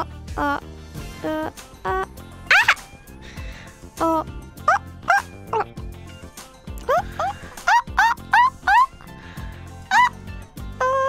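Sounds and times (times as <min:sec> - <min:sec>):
light background music: 0:00.0 - 0:11.0
monkey-like hooting whoops: 0:02.5 - 0:02.8, 0:10.8 - 0:11.0.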